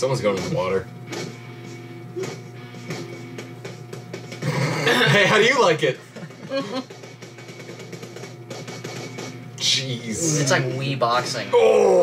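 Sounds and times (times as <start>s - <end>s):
faint action film music: 0.0s - 12.0s
steady low hum: 0.0s - 12.0s.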